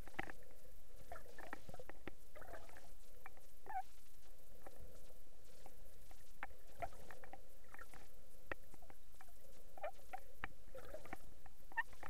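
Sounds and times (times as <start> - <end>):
faint low water noise: 0.0 - 12.0.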